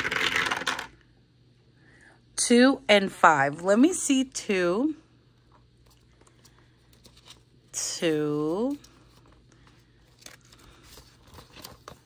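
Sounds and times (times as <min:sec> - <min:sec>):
dice clattering down a dice tower: 0:00.0 - 0:01.0.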